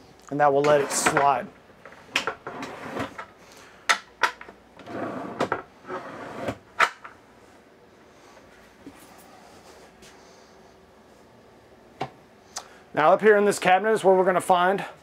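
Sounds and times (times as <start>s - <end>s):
tabletop sliding scrapes: 0.6s - 1.2s, 2.4s - 3.2s, 4.8s - 6.6s.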